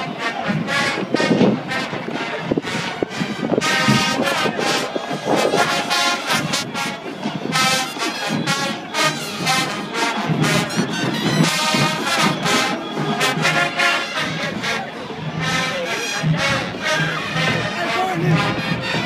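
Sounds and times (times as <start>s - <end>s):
marching band playing: 0.0s - 19.0s
punchy brass phrases: 0.0s - 19.0s.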